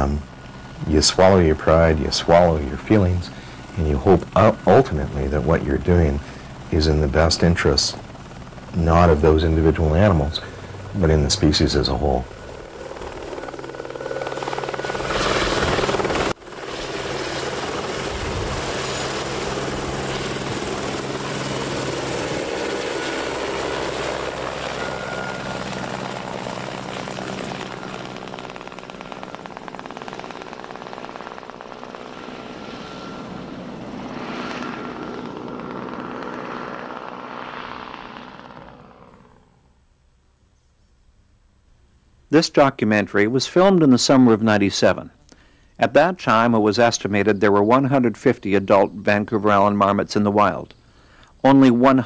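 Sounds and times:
helicopter engine and rotor: 0.0 - 39.7.

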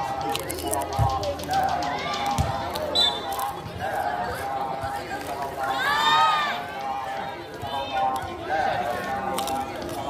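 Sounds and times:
background chatter: 0.0 - 10.0
voices shouting: 1.0 - 10.0.

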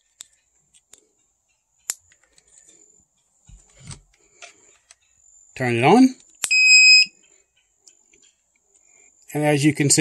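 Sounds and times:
high electronic beep: 6.5 - 7.2.

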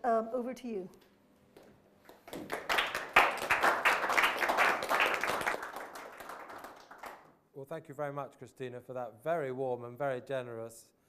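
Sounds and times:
audience applauding: 2.1 - 7.3.

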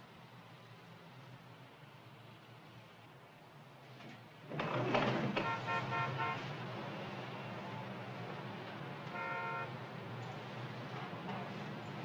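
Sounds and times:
street traffic: 0.0 - 12.0
car horns honking: 5.3 - 6.4, 9.1 - 9.7.

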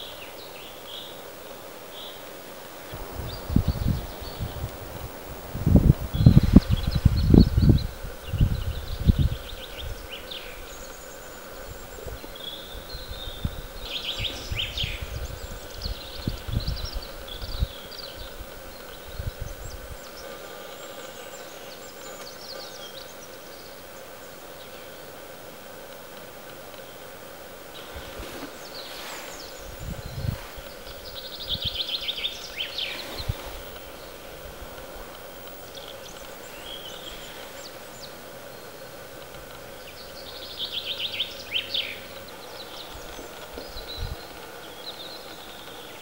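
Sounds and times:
small birds chirping: 0.0 - 46.0
wind buffeting microphone: 2.8 - 20.4, 27.2 - 38.1, 41.5 - 46.0.

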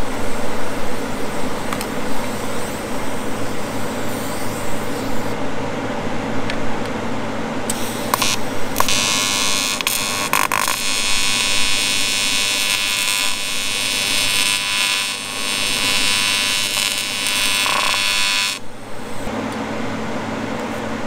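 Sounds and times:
welding arc buzzing: 0.0 - 5.4, 7.6 - 19.4
low steady hum: 0.0 - 21.0.

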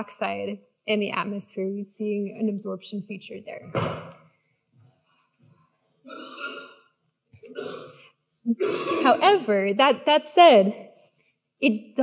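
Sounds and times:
woman speaking: 0.0 - 3.7, 8.5 - 10.8, 11.6 - 12.0.

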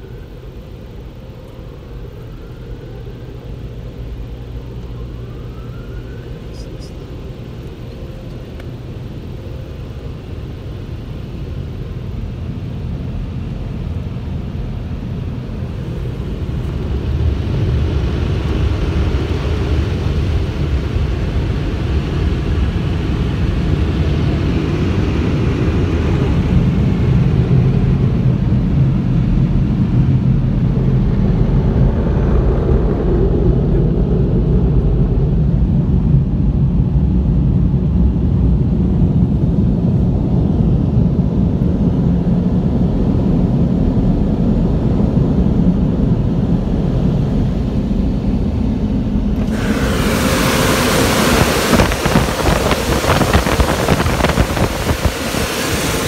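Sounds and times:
car wash dryer blowers rushing air: 0.0 - 56.0.

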